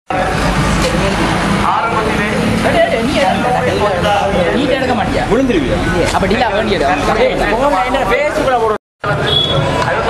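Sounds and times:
crowd voices: 0:00.1 - 0:10.0
vehicle engines: 0:00.1 - 0:10.0.

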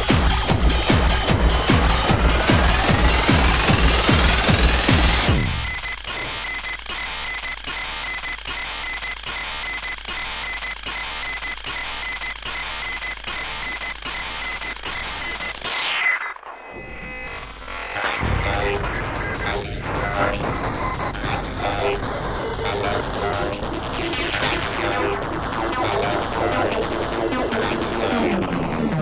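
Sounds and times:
kick drum beat: 0:00.0 - 0:05.8
steady high tone: 0:00.0 - 0:06.5
synth sweep: 0:00.0 - 0:06.6.

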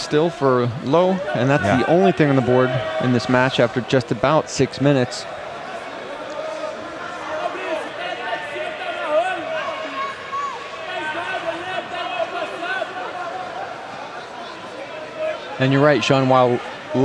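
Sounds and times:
murmur of voices: 0:00.0 - 0:17.0
people calling out: 0:01.3 - 0:03.1.

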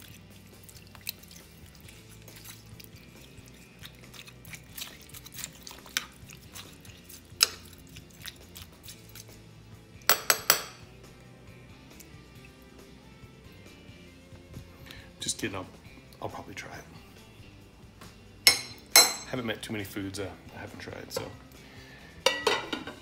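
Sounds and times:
spoon stirring meat mixture: 0:00.0 - 0:14.6
spoon clinking against crock: 0:10.0 - 0:10.9, 0:18.5 - 0:19.3, 0:22.2 - 0:22.9.

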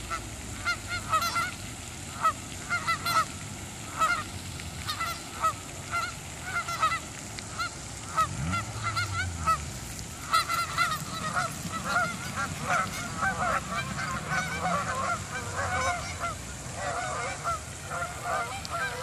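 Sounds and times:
geese honking: 0:00.0 - 0:19.0.

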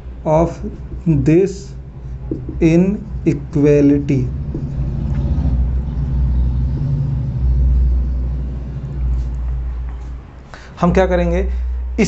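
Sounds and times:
loud low rumble: 0:00.3 - 0:10.4.

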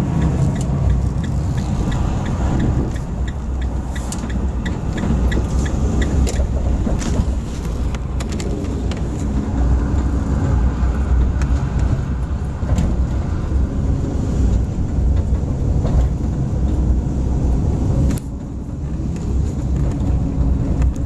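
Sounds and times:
car road and engine rumble: 0:00.0 - 0:21.0.

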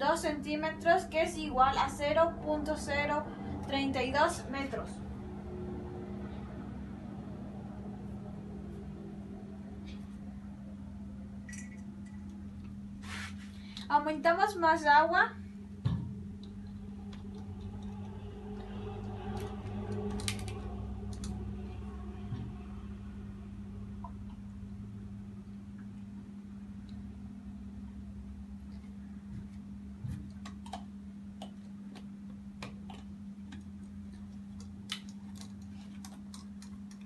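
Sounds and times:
steady low hum: 0:00.0 - 0:37.0.

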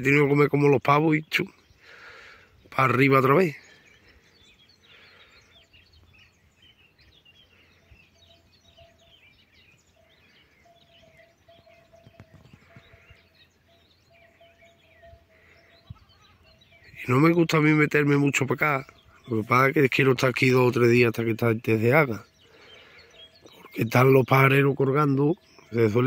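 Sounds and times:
small birds chirping: 0:00.0 - 0:26.0.

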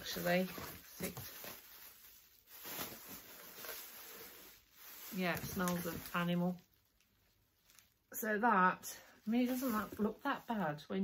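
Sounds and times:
plastic bag rustling: 0:00.0 - 0:08.1, 0:09.0 - 0:11.0.

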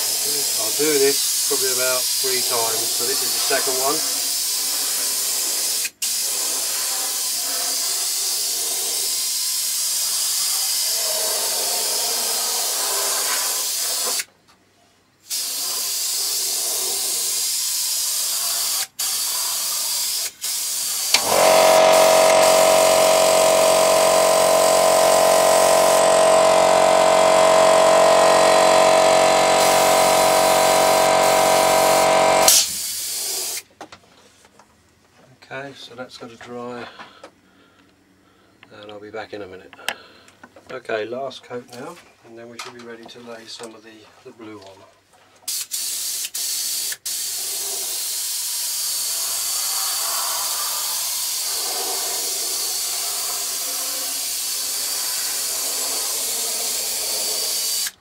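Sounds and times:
airbrush hissing: 0:00.0 - 0:14.2, 0:15.3 - 0:33.6, 0:47.1 - 0:58.0
compressor motor humming: 0:21.1 - 0:32.7, 0:51.4 - 0:58.0.

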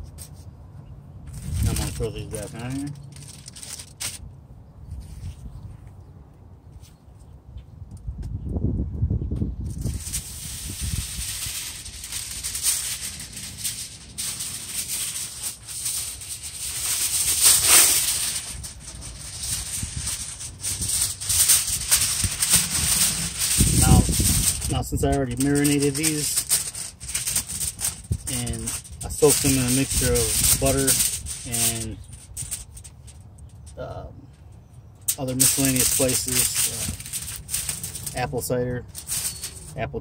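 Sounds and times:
tin foil rustling and crinkling: 0:01.3 - 0:04.2, 0:09.6 - 0:33.8, 0:35.0 - 0:40.0.

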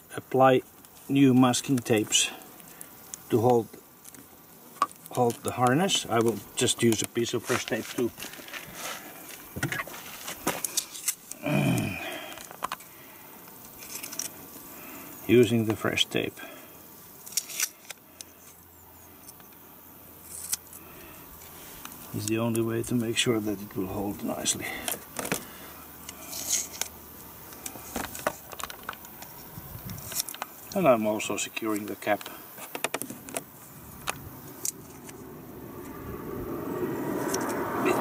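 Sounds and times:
low rumble: 0:35.2 - 0:38.0.

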